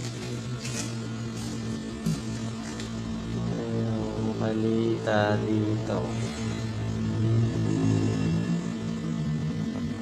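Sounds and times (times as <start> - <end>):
welding machine humming: 0.0 - 10.0.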